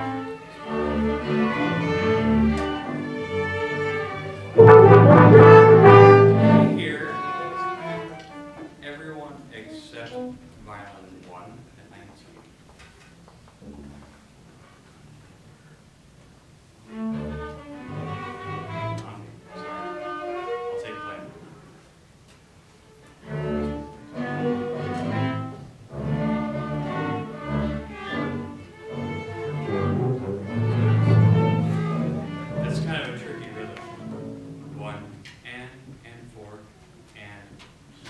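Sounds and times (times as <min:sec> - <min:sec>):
orchestra playing: 0:00.0 - 0:08.7, 0:16.9 - 0:21.6, 0:23.2 - 0:35.2.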